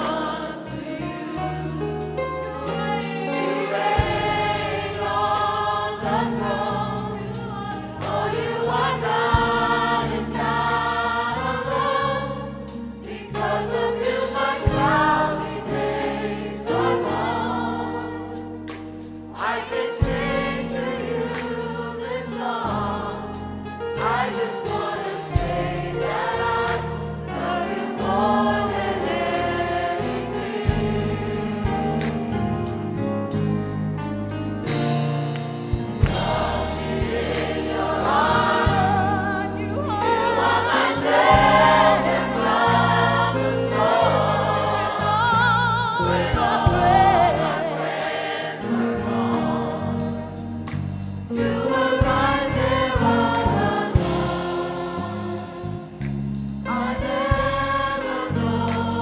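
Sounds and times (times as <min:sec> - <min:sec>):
gospel choir singing: 0:00.0 - 0:33.4, 0:34.6 - 0:59.0
church band playing: 0:00.0 - 0:59.0.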